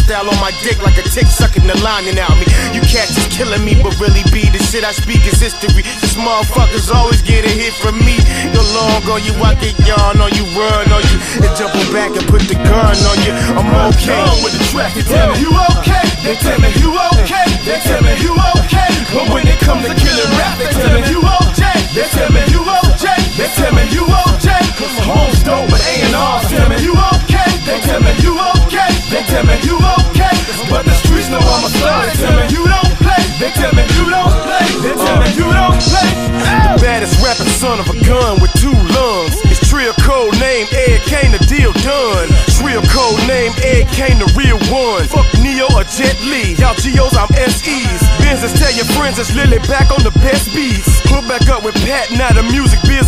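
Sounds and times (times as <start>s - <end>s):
heavy kick drum beat: 0.0s - 53.0s
hip-hop music with vocals: 0.0s - 53.0s
rapping over a beat: 0.0s - 53.0s.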